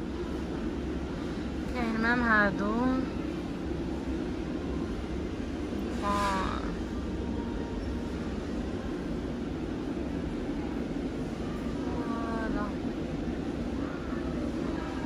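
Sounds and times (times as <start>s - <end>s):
store background hum: 0.0s - 15.0s.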